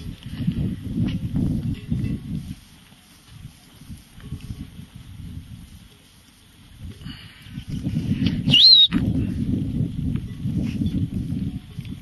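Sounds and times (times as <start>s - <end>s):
wind rumble on microphone: 0.0s - 12.0s
loud high whistle: 8.5s - 9.0s.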